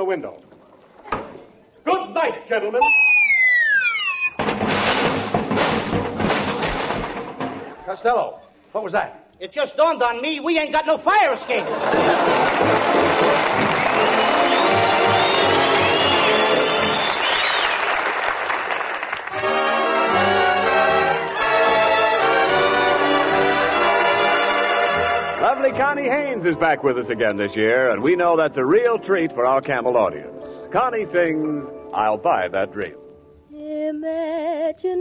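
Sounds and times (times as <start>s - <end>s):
whistle gliding down in pitch: 2.8s - 4.4s, 14.0s - 17.9s
loud noisy crash: 4.4s - 7.9s
audience applauding: 11.3s - 25.4s.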